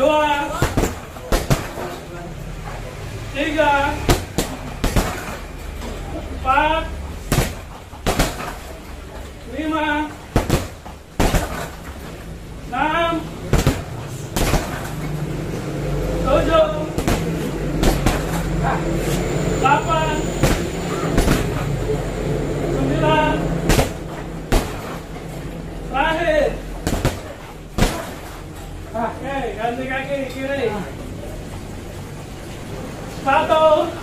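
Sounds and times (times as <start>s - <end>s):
steady low hum: 0.0s - 34.0s
kicks thudding on punching bag: 0.5s - 1.9s, 4.1s - 5.4s, 7.2s - 8.6s, 10.3s - 12.0s, 13.4s - 15.0s, 16.9s - 18.6s, 20.4s - 21.7s, 23.6s - 25.1s, 26.8s - 28.4s.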